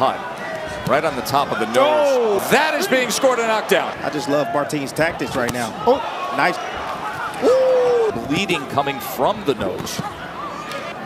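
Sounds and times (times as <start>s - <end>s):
man commentating: 0.9s - 5.8s, 8.0s - 10.0s.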